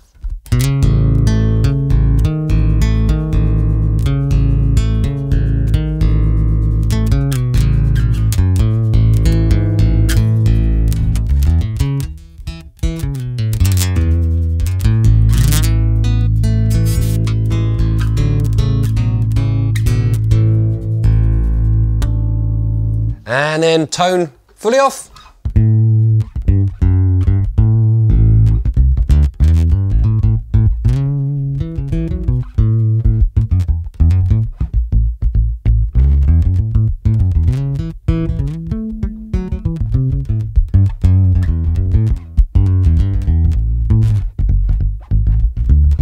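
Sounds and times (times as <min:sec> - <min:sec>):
plucked bass notes: 0:00.2 - 0:23.2, 0:25.4 - 0:46.0.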